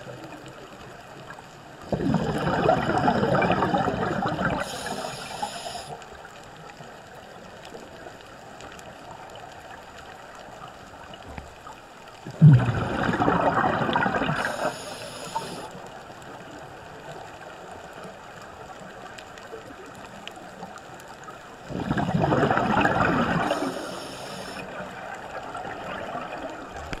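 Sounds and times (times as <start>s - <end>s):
faint water hiss: 0.0s - 27.0s
gurgling exhaled bubbles: 1.8s - 5.9s, 12.2s - 15.7s, 21.6s - 27.0s
short high hiss: 4.6s - 6.0s, 14.4s - 15.7s, 23.5s - 24.6s.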